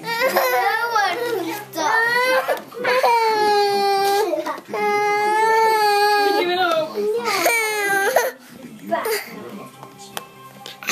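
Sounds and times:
toddler crying: 0:00.0 - 0:08.4.

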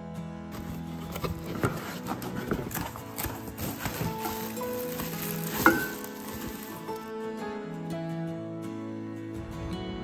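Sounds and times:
soft background music: 0:00.0 - 0:10.0
packaging rustling and crinkling: 0:00.6 - 0:07.2.

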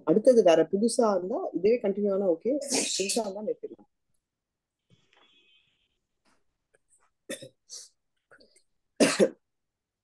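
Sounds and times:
woman coughing: 0:07.3 - 0:07.6, 0:09.0 - 0:09.4.

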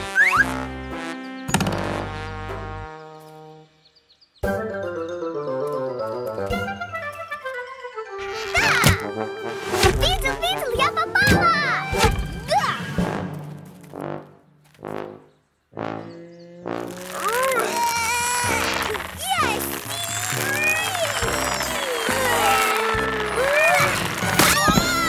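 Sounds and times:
wordless excited cries: 0:17.2 - 0:25.0.

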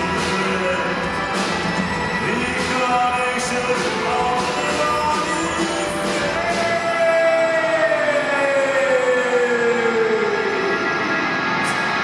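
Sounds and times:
live band strings and keyboards: 0:00.0 - 0:12.0.

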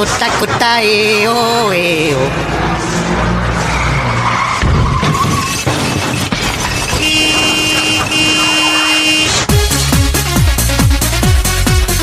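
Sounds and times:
car driving and skidding: 0:00.0 - 0:09.5.

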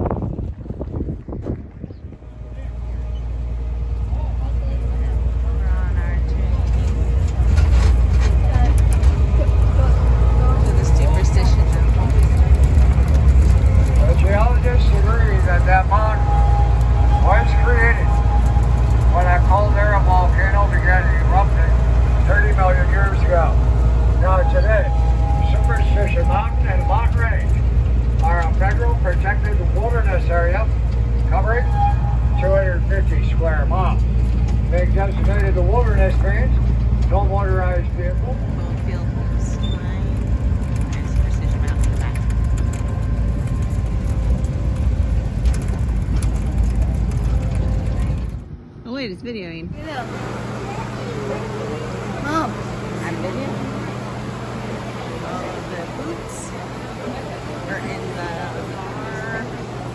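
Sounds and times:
train rumbling along track: 0:00.0 - 0:59.9.

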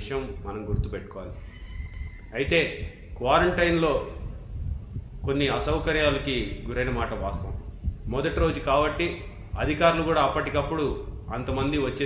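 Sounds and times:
man speaking: 0:05.3 - 0:12.0.

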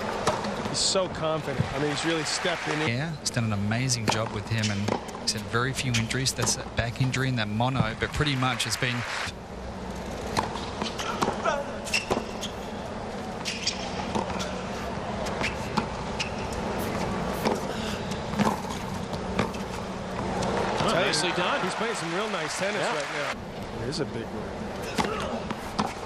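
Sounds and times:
stadium crowd murmur: 0:20.0 - 0:25.7.

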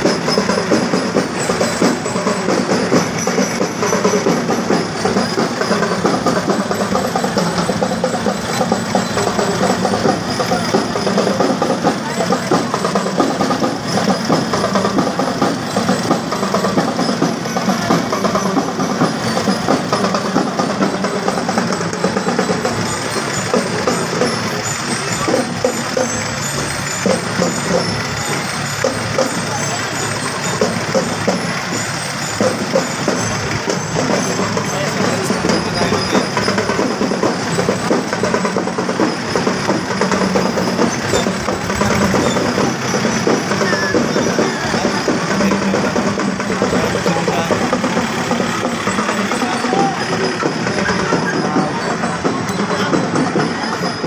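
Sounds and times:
crowd chatter: 0:00.0 - 0:54.0
drumming: 0:00.0 - 0:54.0
music: 0:00.0 - 0:54.0
tractor engines passing: 0:00.0 - 0:54.0.

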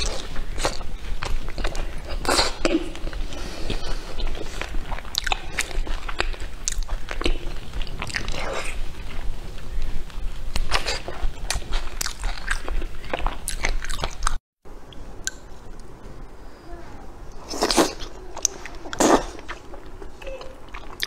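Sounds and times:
biting and chewing: 0:00.0 - 0:14.4, 0:17.4 - 0:21.0.

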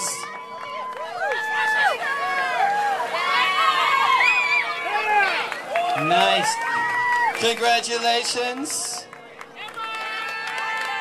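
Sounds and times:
girls cheering: 0:00.2 - 0:07.4.

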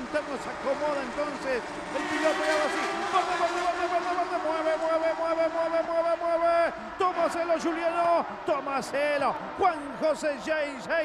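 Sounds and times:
racing car engines at full throttle: 0:00.0 - 0:09.6.

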